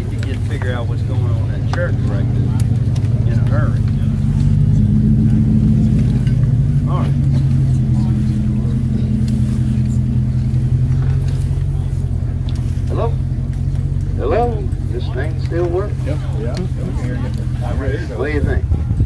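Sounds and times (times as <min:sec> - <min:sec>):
crowd voices: 0:00.0 - 0:19.0
vehicle engine idling hum: 0:00.0 - 0:19.0
man speaking: 0:14.1 - 0:18.7.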